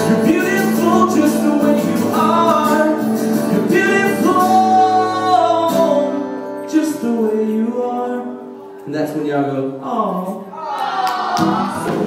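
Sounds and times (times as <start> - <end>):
man singing: 0.0 - 8.6
acoustic guitar: 0.0 - 12.0.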